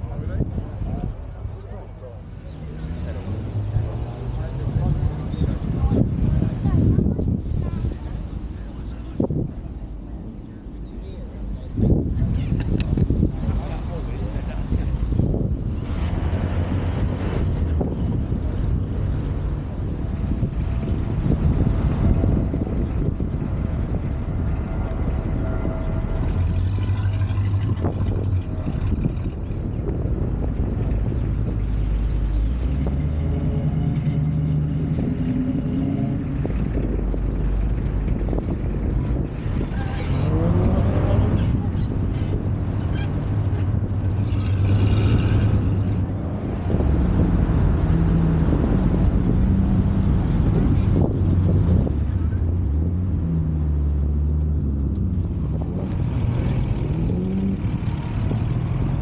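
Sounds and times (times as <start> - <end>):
car engine revving: 0.0 - 59.0
car engines driving off: 0.0 - 59.0.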